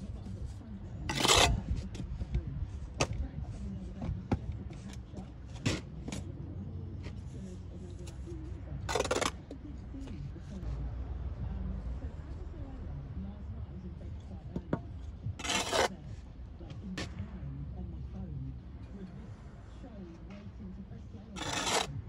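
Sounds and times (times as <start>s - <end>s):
trowel scraping mortar: 0.9s - 2.0s, 8.8s - 9.5s, 15.0s - 16.0s, 21.3s - 22.0s.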